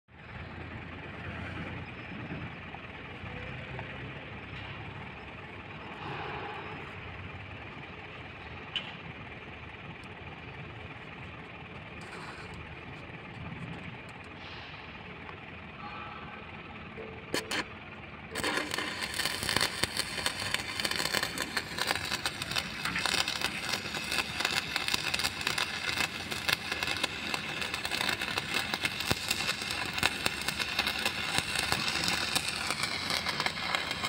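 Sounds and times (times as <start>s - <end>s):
machine running with low hum: 0.1s - 34.0s.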